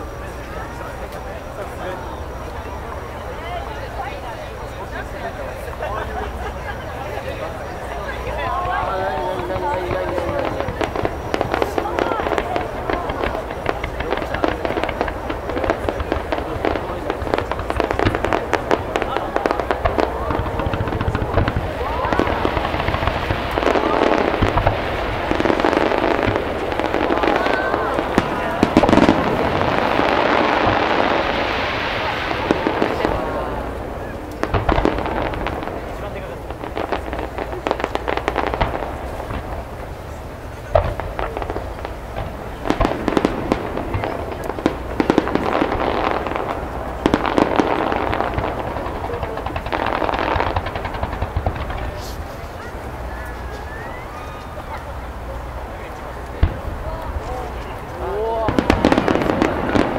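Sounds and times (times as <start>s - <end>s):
fireworks bangs and crackling: 0.0s - 59.9s.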